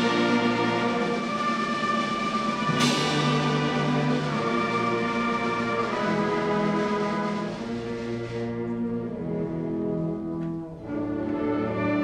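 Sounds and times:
percussion crash: 0.0s - 5.9s
concert band sustained chord: 0.0s - 7.8s.

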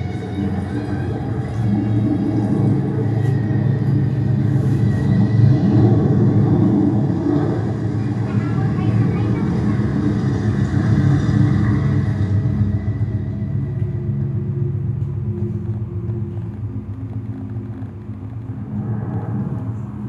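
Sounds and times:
indistinct voices: 0.0s - 20.0s
low rumbling soundtrack over speakers: 0.0s - 20.0s.

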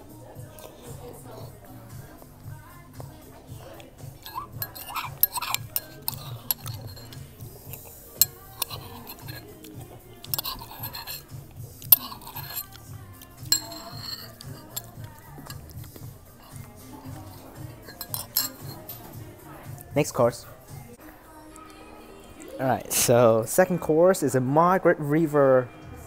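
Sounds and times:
quiet background music: 0.0s - 26.0s
cutlery clinking on dishes: 3.6s - 19.8s.

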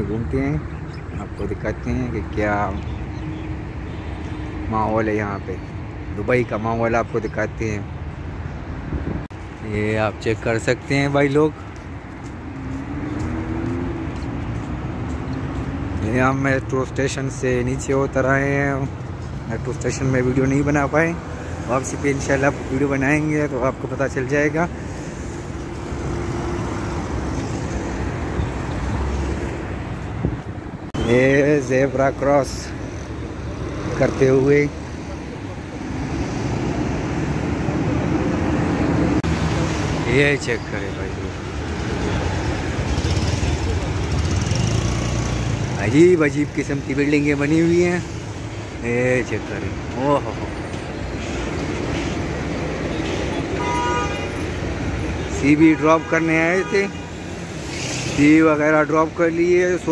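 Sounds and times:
cars driving past: 7.6s - 59.9s
car horn toot: 53.1s - 54.4s.

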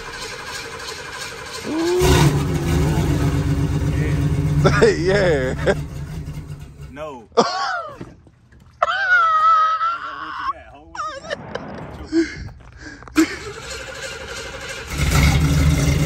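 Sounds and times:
car engine starting and rumbling: 0.0s - 7.4s, 11.2s - 16.0s.

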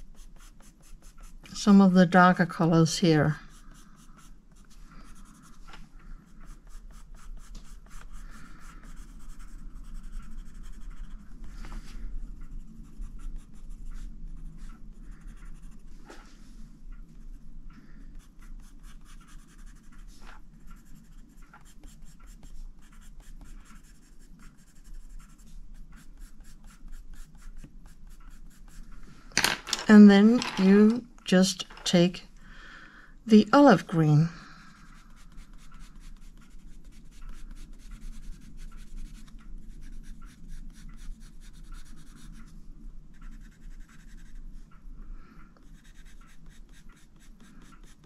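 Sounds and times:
coloured pencil scratching on paper: 0.0s - 16.5s, 18.1s - 28.9s, 33.3s - 42.5s, 43.1s - 44.5s, 45.6s - 48.0s.

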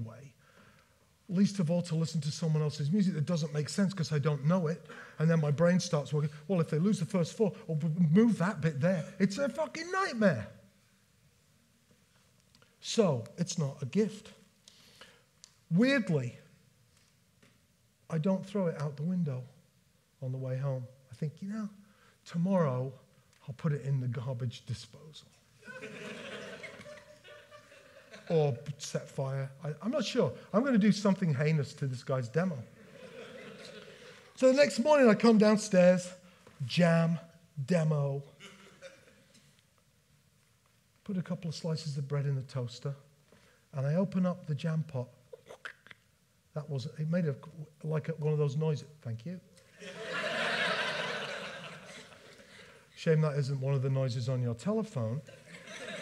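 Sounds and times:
audience laughing: 25.6s - 28.3s, 32.8s - 34.3s, 49.8s - 52.8s, 55.3s - 56.0s.

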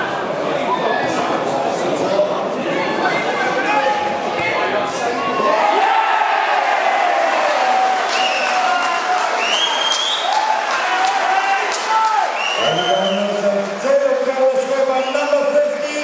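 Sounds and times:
football crowd shouting and cheering: 2.6s - 16.0s
people clapping: 7.0s - 16.0s.

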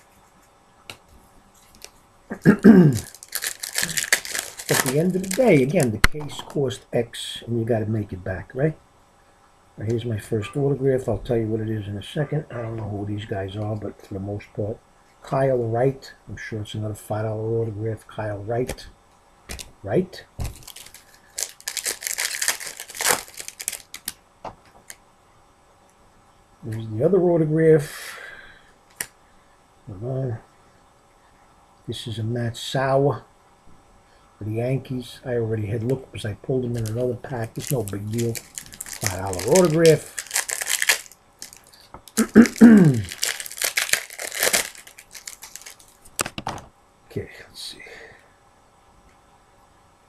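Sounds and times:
wrapper crinkling: 1.6s - 6.5s, 20.4s - 24.2s, 36.6s - 46.4s
man clearing throat: 2.3s - 3.1s, 42.2s - 43.1s.

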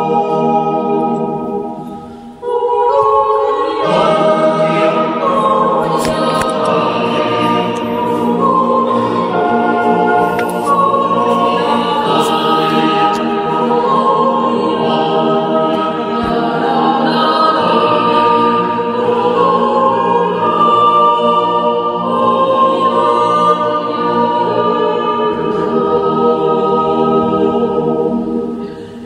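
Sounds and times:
choir yodelling in harmony: 0.0s - 29.0s.

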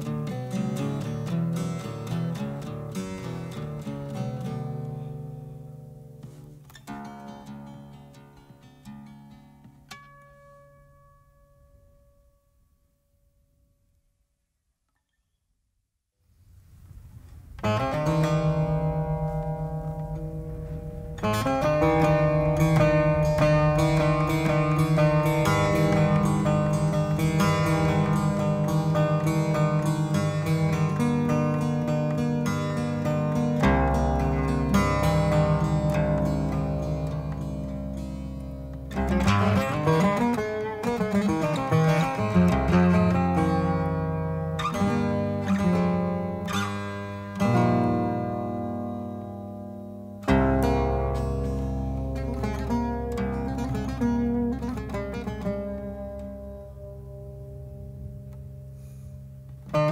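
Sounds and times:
fast picked lute melody: 0.0s - 12.2s, 16.9s - 59.9s
low drone note: 16.8s - 31.9s.

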